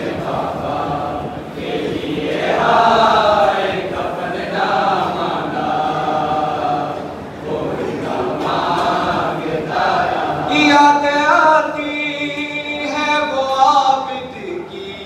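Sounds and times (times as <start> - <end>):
men chanting together: 0.0 - 12.7
person singing into a microphone: 10.4 - 15.0.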